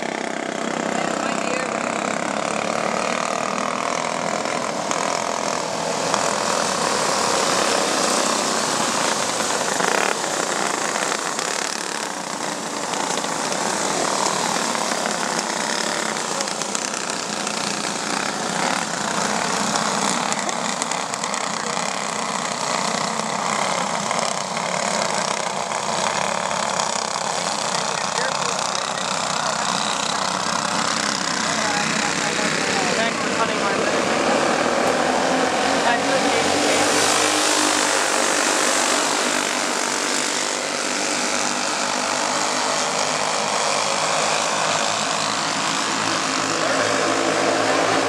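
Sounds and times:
go-kart engines buzzing: 0:00.0 - 0:48.0.

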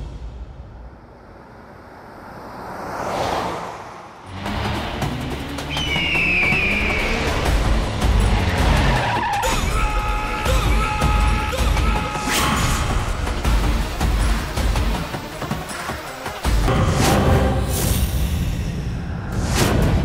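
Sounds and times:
car speeding: 0:01.4 - 0:09.8
dramatic background music: 0:04.2 - 0:20.0
tyre squeal skidding: 0:05.6 - 0:07.6, 0:08.2 - 0:12.9.

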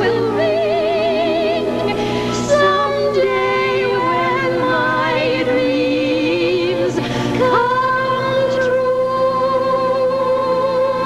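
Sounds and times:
soft accompaniment: 0:00.0 - 0:11.0.

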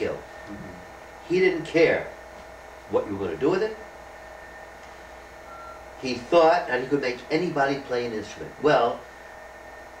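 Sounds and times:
faint steady whine: 0:00.0 - 0:10.0
low electrical hum: 0:00.0 - 0:10.0.

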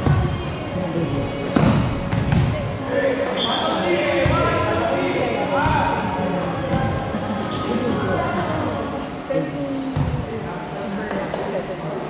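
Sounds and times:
volleyball hits echoing in gym: 0:00.0 - 0:00.4, 0:01.5 - 0:03.4, 0:04.1 - 0:07.1.

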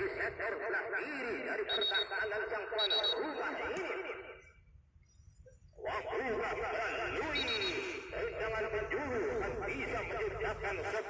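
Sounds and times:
football commentary voice: 0:00.0 - 0:04.4, 0:05.8 - 0:11.0.

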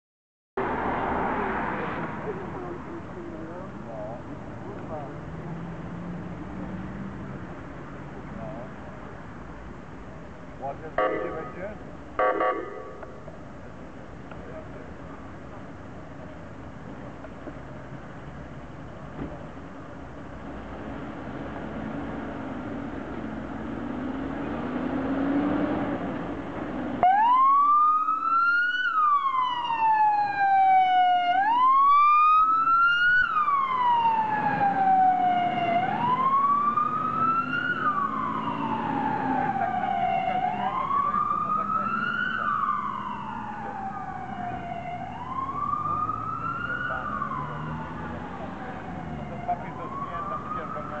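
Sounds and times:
wailing siren: 0:10.9 - 0:13.4, 0:27.0 - 0:51.0.

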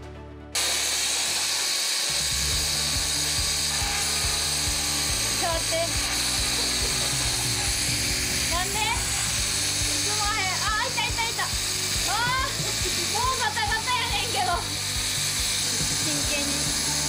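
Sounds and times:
electric knife cutter running: 0:00.6 - 0:17.0.

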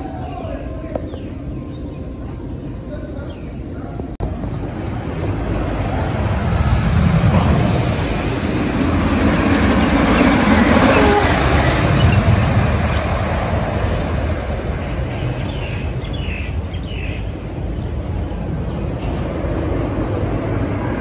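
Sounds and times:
wooden roller coaster rumbling: 0:00.0 - 0:21.0.

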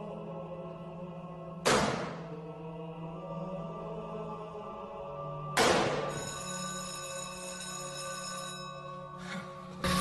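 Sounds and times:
wooden paddle smack: 0:01.6 - 0:02.2
electric school bell ringing: 0:06.1 - 0:09.2.

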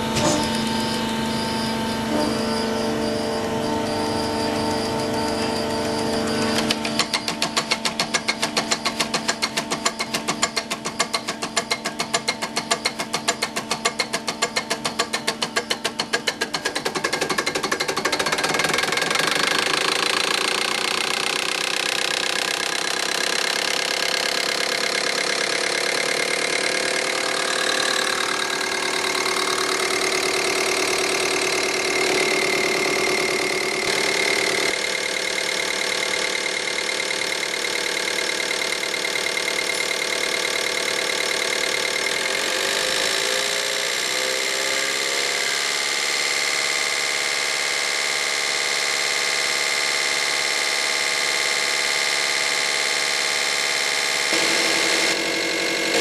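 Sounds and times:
injection pump ticking: 0:06.6 - 0:42.8.

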